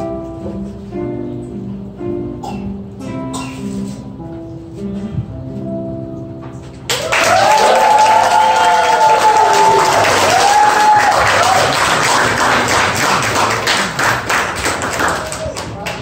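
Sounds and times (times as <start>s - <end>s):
voices whooping: 6.9s - 11.9s
audience clapping: 6.9s - 16.0s.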